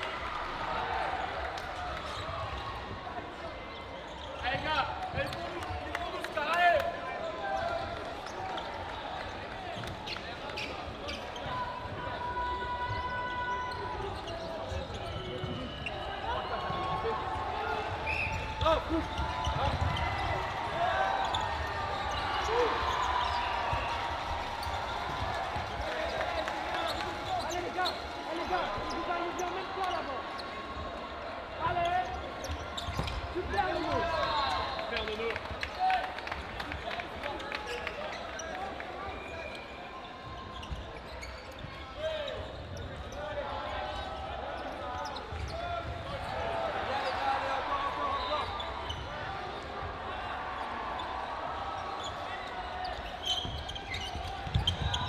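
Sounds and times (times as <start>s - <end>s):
players calling out: 5.5s - 39.5s
sneakers squeaking on wooden floor: 9.2s - 35.0s, 37.6s - 47.2s, 47.8s - 49.8s, 50.6s - 55.0s.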